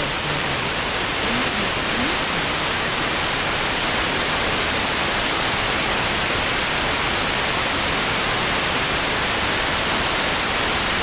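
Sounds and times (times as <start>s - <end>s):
radio static hiss: 0.0s - 4.5s
faint voice through static: 0.0s - 6.2s.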